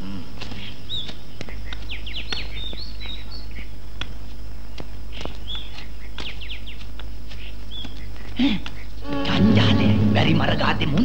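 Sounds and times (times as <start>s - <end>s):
wild birds chirping and whistling: 0.0s - 11.0s
steady low hum: 6.8s - 11.0s.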